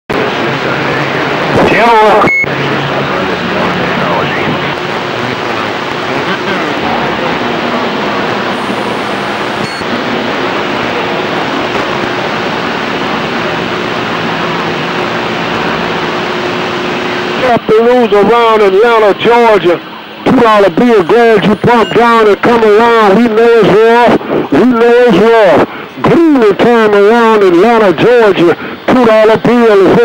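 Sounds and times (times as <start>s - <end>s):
radio hiss and static: 0.1s - 30.0s
garbled radio voices: 0.3s - 10.0s, 12.7s - 30.0s.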